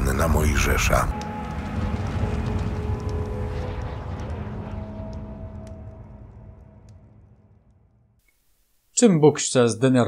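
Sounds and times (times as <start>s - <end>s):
deep low rumble: 0.0s - 8.2s
held drone tones: 0.2s - 7.8s.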